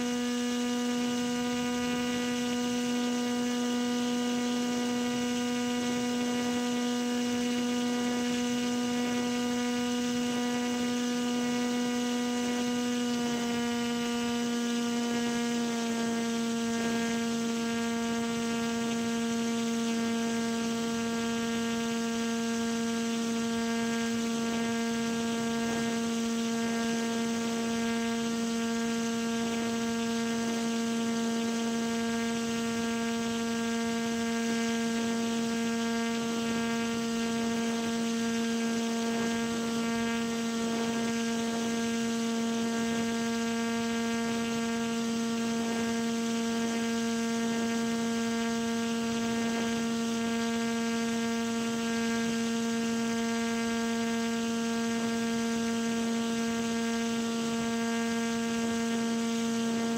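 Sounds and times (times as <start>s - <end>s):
steady hum with overtones: 0.0s - 59.9s.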